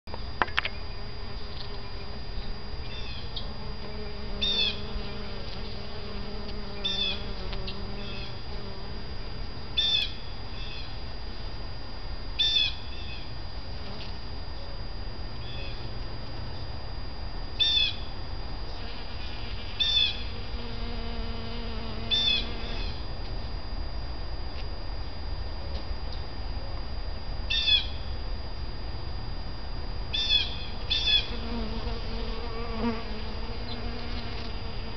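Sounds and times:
bees buzzing: 0.3s - 23.2s, 30.1s - 34.9s.

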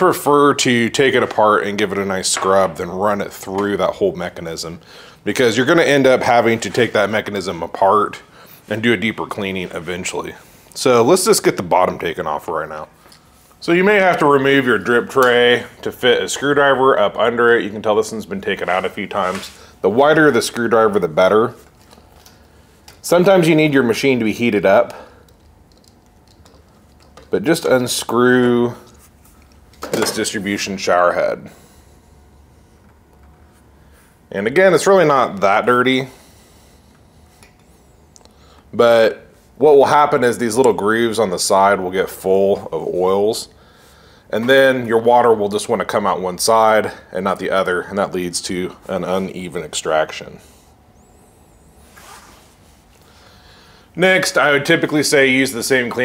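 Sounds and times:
low steady hum: 0.0s - 56.0s.

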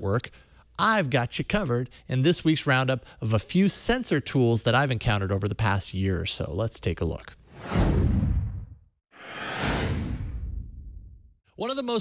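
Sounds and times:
whoosh transition effect: 7.5s - 11.3s.

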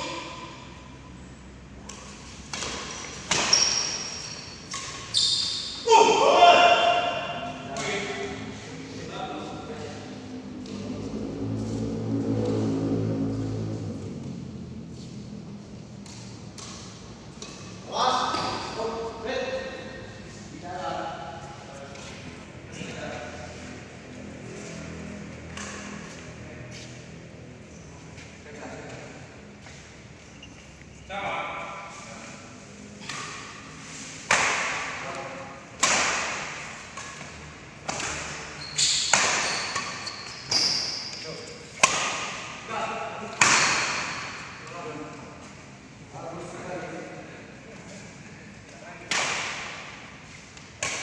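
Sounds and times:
racket striking shuttlecock: 1.8s - 5.1s, 33.0s - 35.0s, 35.8s - 40.0s, 41.7s - 42.6s, 43.3s - 44.5s, 49.1s - 50.0s, 50.7s - 51.0s
motor vehicle engine hum: 8.4s - 17.8s.

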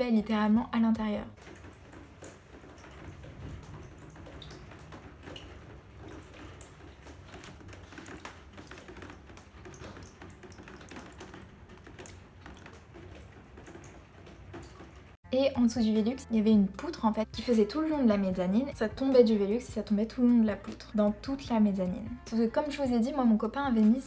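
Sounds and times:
water dripping into plastic basins: 0.4s - 15.2s, 16.7s - 24.0s.

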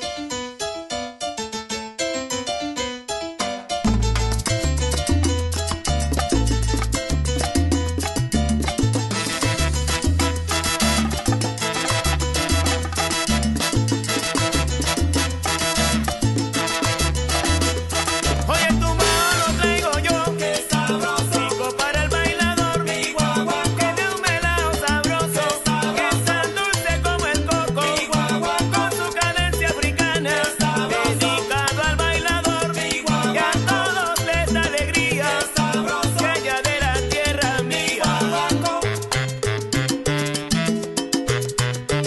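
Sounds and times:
salsa music: 0.0s - 42.0s.

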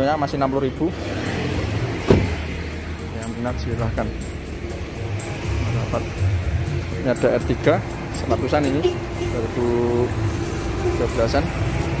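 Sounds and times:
car door shutting: 2.0s - 2.4s.

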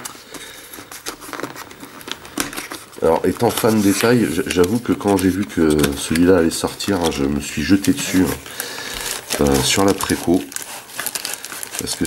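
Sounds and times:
clicks and crackles of card and plastic: 0.0s - 12.0s.

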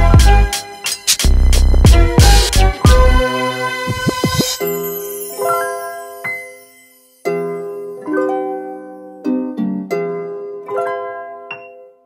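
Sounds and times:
plucked-string chords: 1.3s - 4.7s, 7.2s - 11.9s.

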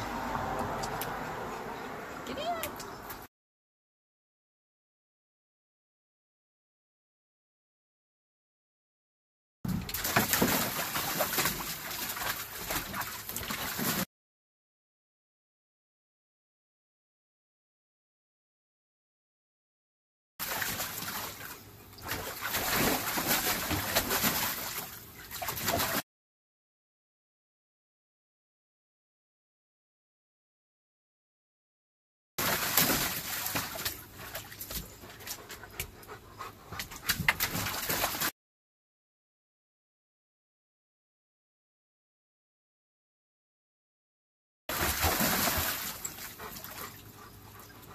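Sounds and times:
dog splashing in pool water: 9.7s - 14.1s, 20.4s - 26.0s, 32.4s - 35.7s, 36.8s - 38.3s, 44.7s - 47.7s
dog panting: 35.0s - 37.4s, 46.3s - 47.9s.

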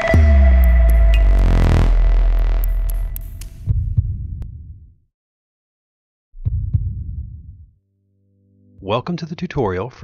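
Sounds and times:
synth swell: 0.0s - 3.3s.

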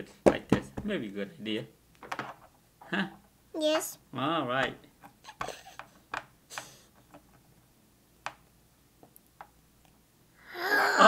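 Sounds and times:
plastic mold knocking on table: 0.2s - 1.0s.

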